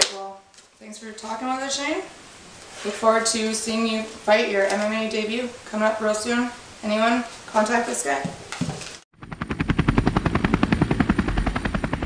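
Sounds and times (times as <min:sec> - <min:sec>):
rapid chopping pulses: 0:09.2 - 0:12.0.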